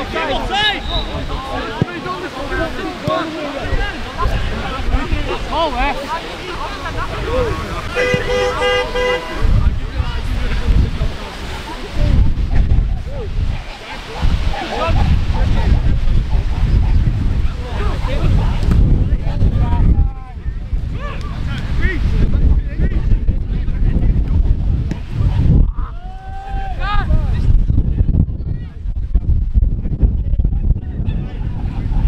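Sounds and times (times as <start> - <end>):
wind buffeting microphone: 0.0 - 32.0
distant shouts: 7.4 - 9.6.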